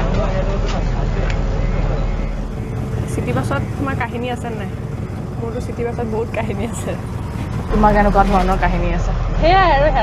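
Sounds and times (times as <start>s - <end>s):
bus engine rumble: 0.0s - 10.0s
voices talking: 0.0s - 10.0s.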